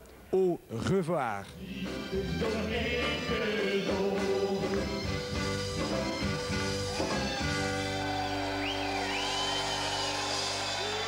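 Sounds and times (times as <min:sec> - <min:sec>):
blues harmonica sliding notes: 0:03.8 - 0:11.0
live blues band music: 0:04.2 - 0:08.8.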